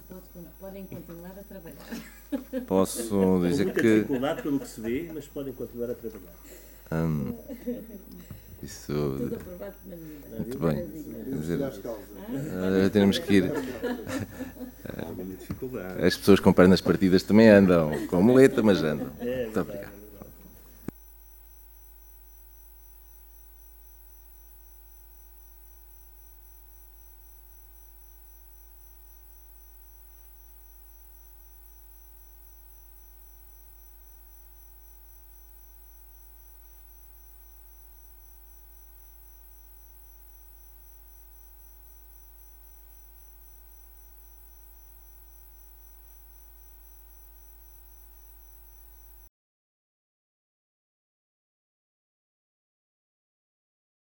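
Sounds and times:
electrical mains hum: 0.0 - 49.3
thin high whine: 0.0 - 49.3.

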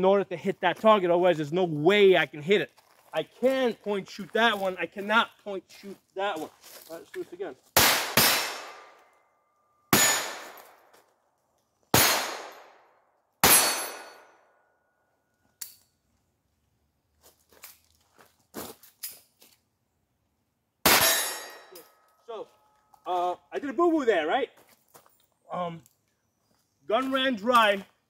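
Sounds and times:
pistol shots: 7.8 - 9.0, 9.9 - 10.8, 11.9 - 12.8, 13.4 - 14.2, 20.9 - 21.6
steel plate ringing: 13.4 - 14.2, 20.9 - 21.8.

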